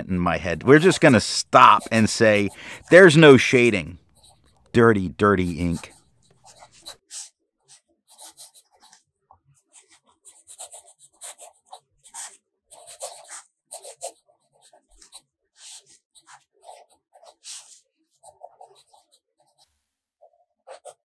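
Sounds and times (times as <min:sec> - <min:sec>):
pen nib scratching on paper: 0:00.0 - 0:09.0, 0:09.6 - 0:19.6, 0:20.2 - 0:21.0.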